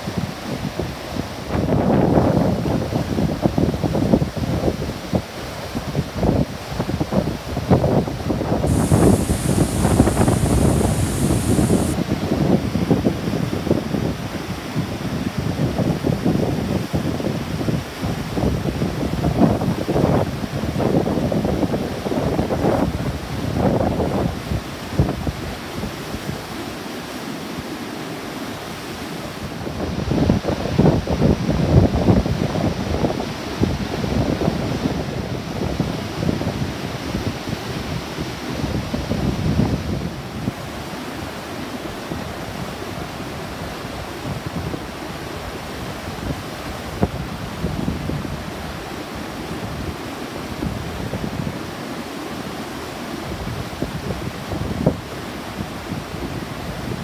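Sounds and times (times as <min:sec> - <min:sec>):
wind buffeting microphone: 0:08.6 - 0:12.0
stream rushing over weir: 0:08.7 - 0:12.0.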